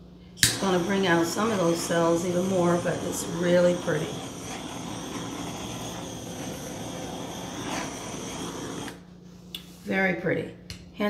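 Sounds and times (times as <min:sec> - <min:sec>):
torch flame hissing: 0:00.4 - 0:09.2.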